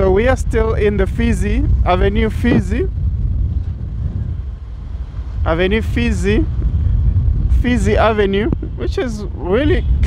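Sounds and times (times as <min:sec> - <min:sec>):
motorbike road noise: 0:00.0 - 0:10.0
wind buffeting microphone: 0:00.0 - 0:10.0.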